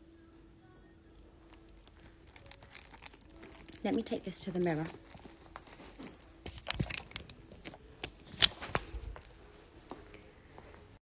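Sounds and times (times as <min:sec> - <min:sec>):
phone handling rustling: 0:01.6 - 0:03.8, 0:04.9 - 0:09.3.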